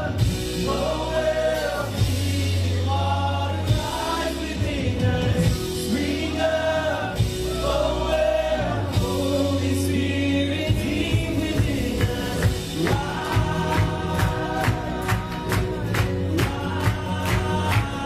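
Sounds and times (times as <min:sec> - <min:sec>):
deep held bass notes: 0:00.0 - 0:18.0
several voices singing: 0:00.0 - 0:18.0
worship band playing: 0:00.0 - 0:18.0.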